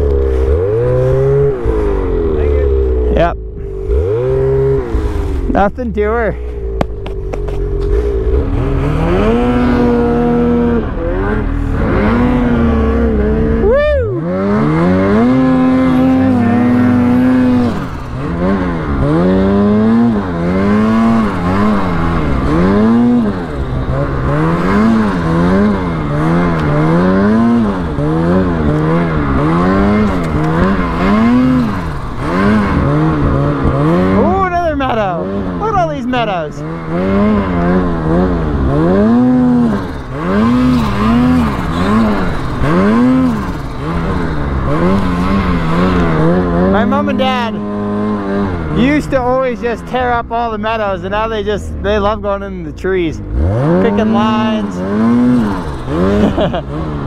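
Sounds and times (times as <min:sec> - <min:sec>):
snowmobile engine revving: 0:00.0 - 0:57.0.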